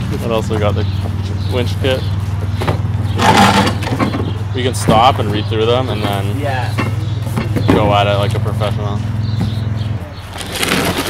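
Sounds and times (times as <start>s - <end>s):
plastic bags and cardboard rustling: 10.2s - 11.0s.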